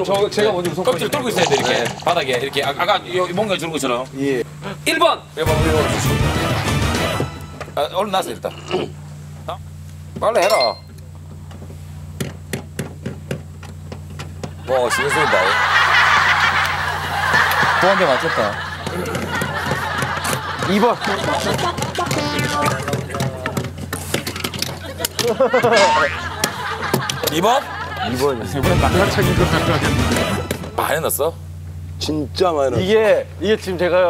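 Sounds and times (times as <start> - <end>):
voices talking: 0.0 - 6.3, 17.0 - 23.7, 25.2 - 31.2
steady low hum: 0.0 - 34.0.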